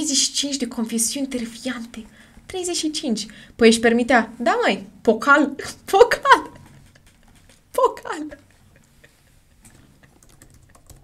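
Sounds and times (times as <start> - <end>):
computer keyboard typing: 6.2 - 8.8, 9.6 - 11.0.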